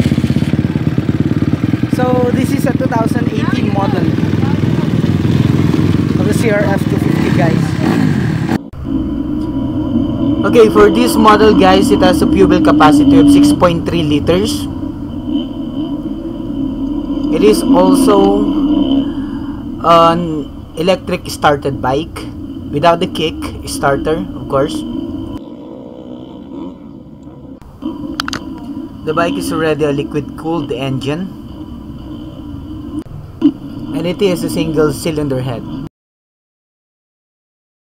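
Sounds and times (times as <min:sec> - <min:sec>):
low engine rumble: 0:00.0 - 0:35.9.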